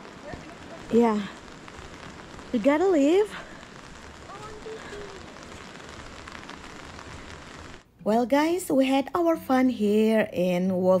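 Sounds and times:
steady rain falling: 0.0 - 7.9
faint voice: 4.2 - 5.4.

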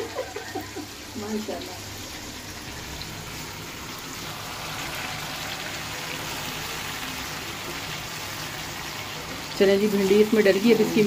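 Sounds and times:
okra sizzling in hot oil: 0.0 - 11.0.

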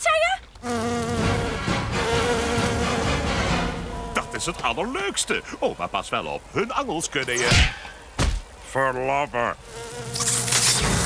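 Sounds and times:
swarm of insects buzzing: 0.5 - 11.0.

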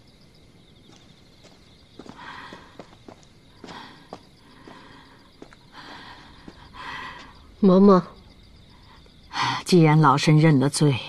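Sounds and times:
footsteps on stone paving: 0.8 - 7.3.

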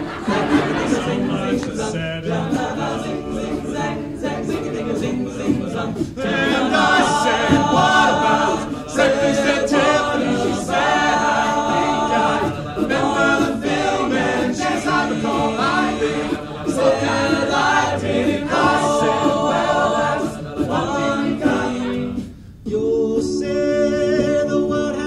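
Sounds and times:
a cappella group singing: 0.0 - 25.0
beatboxed percussion: 0.0 - 25.0.

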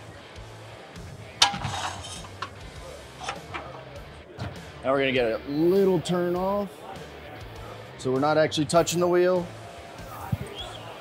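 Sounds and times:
background music: 0.0 - 11.0
sharp metallic clank: 1.4 - 3.7.

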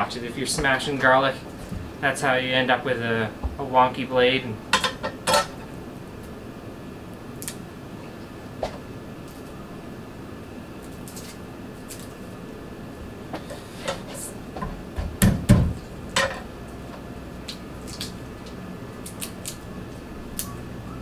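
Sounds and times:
garlic skins peeled by hand: 7.4 - 7.6, 10.7 - 12.4, 17.0 - 20.7.

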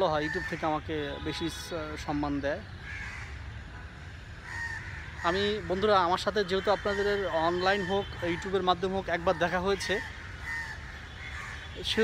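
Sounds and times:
bird calling: 2.3 - 12.0.

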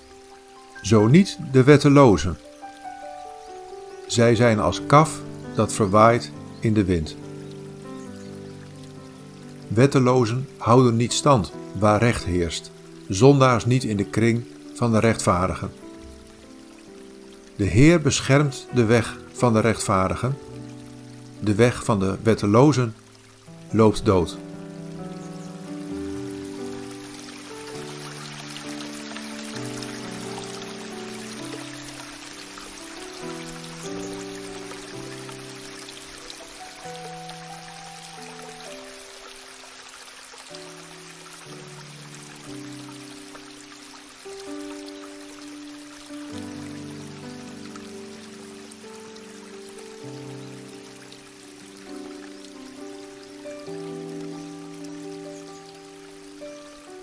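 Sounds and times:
slow calm instrumental music: 0.0 - 57.0
stream water flowing: 0.0 - 57.0.

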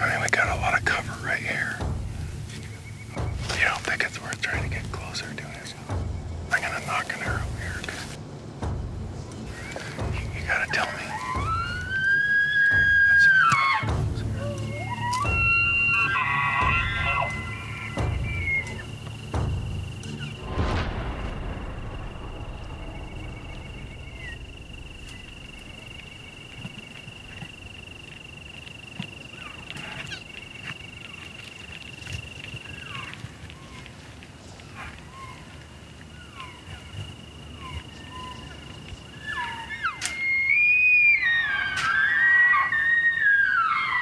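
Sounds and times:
elk bugling: 9.4 - 20.4, 22.4 - 34.0, 34.6 - 44.0.

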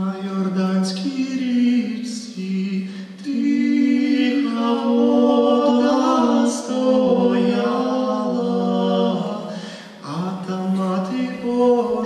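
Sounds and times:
male choir singing in harmony: 0.2 - 12.0
breath: 2.8 - 3.2, 9.5 - 10.0.

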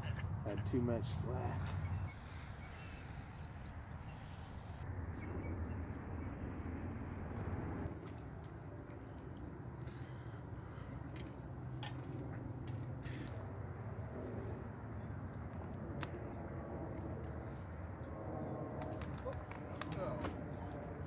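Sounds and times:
distant freeway traffic rumble: 0.0 - 21.0.

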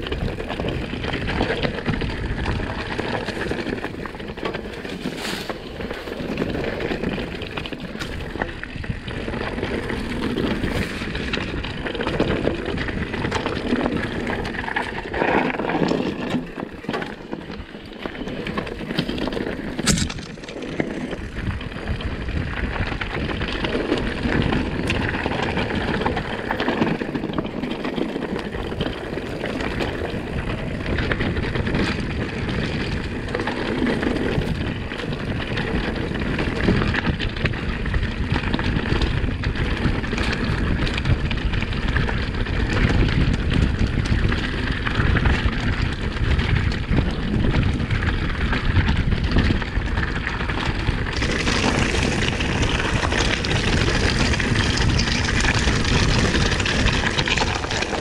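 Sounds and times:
bike rattling and knocking: 0.0 - 58.0
tyres rumbling on loose stones: 0.0 - 58.0.

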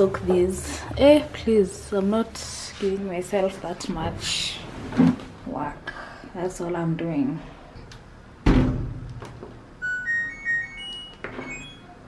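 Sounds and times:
heavy thump: 8.4 - 9.0
washing machine start-up beeps: 9.8 - 12.0.

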